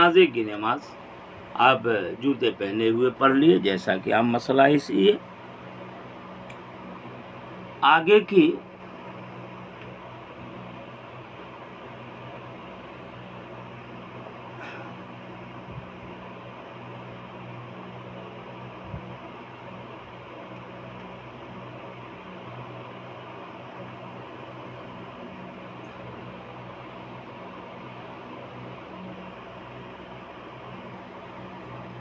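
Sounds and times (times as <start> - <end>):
low hum: 0.0 - 32.0.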